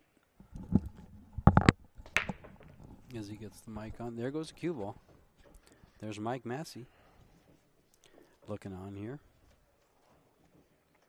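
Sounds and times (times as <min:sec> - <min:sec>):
cue ball cracking into racked balls: 0:00.4 - 0:04.1
pool balls clacking: 0:00.4 - 0:05.6.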